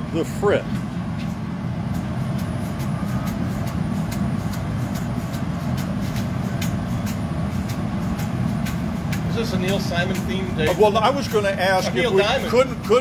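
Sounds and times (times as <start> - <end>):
low roar of furnace and fans: 0.0 - 13.0.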